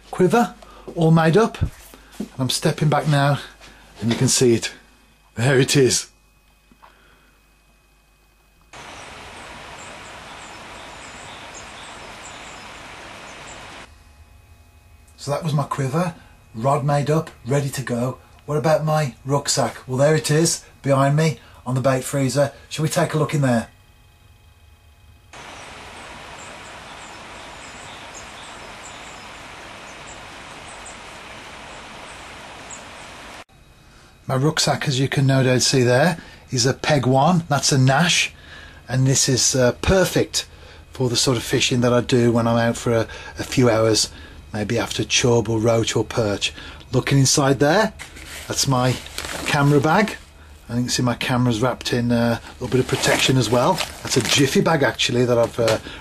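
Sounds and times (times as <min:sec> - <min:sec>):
outdoor background hiss: 0:00.0 - 0:56.0
high bird chirps: 0:09.8 - 0:13.7, 0:26.4 - 0:31.1.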